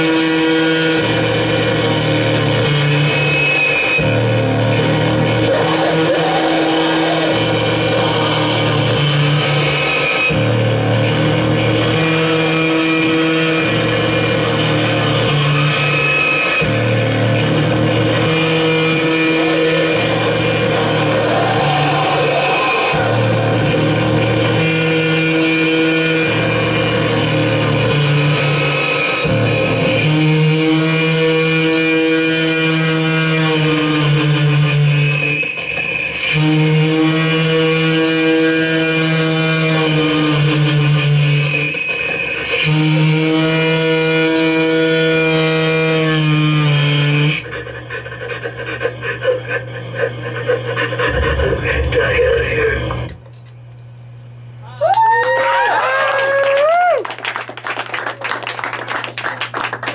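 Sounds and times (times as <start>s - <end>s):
electronic noise music drones: 0.0s - 53.2s.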